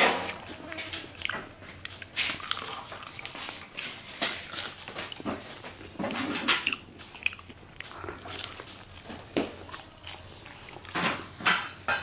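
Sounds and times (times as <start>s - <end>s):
crunchy chewing: 0.0s - 12.0s.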